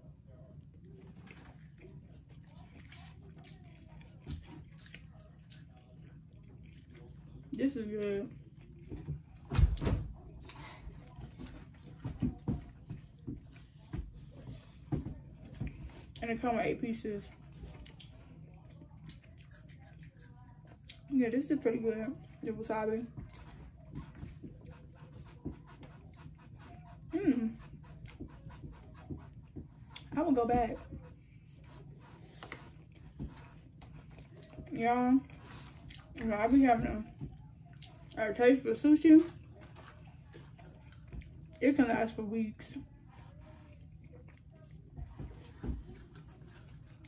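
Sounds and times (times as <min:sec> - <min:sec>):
person chewing food: 0:00.0 - 0:07.6, 0:17.3 - 0:21.1, 0:23.0 - 0:36.3, 0:37.1 - 0:38.2, 0:39.3 - 0:41.6
low room hum: 0:00.0 - 0:47.0.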